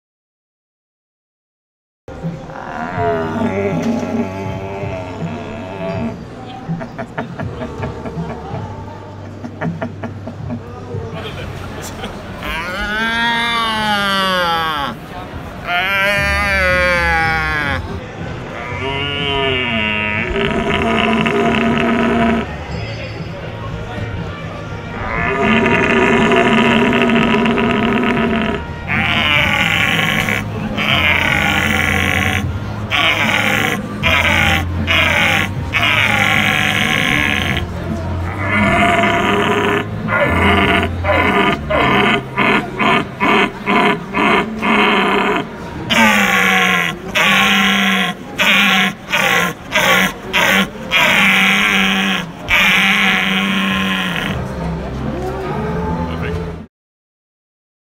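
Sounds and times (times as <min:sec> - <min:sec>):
deer call roaring: 0:02.5 - 0:06.2, 0:12.4 - 0:22.6, 0:24.9 - 0:54.5.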